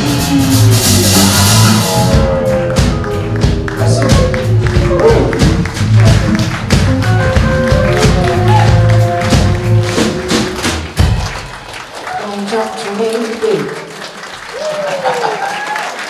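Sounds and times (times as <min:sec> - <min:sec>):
electric guitar: 0:00.0 - 0:11.0
bass guitar: 0:00.0 - 0:11.6
drum kit hits: 0:00.0 - 0:11.8.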